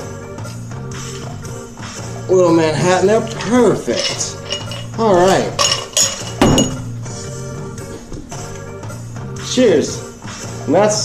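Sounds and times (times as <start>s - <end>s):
background music: 0.0s - 11.0s
glass clinking: 3.3s - 7.0s
glass knock: 5.6s - 7.0s.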